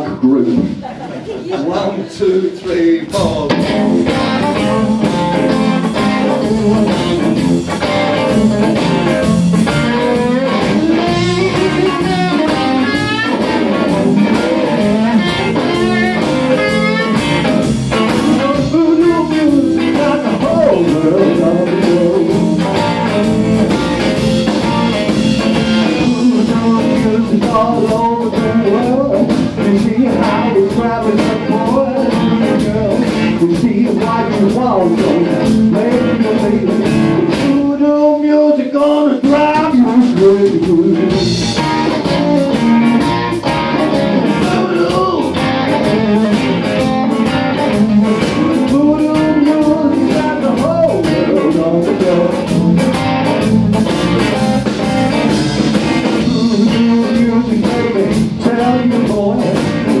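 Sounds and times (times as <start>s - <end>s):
bass guitar: 0.0s - 60.0s
drums: 0.0s - 60.0s
man singing: 1.5s - 24.2s, 25.7s - 43.1s, 43.8s - 54.0s, 55.1s - 60.0s
electric guitars: 2.6s - 60.0s.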